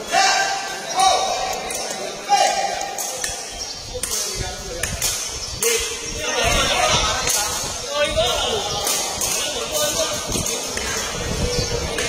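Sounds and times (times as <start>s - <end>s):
onlookers' voices: 0.0s - 12.0s.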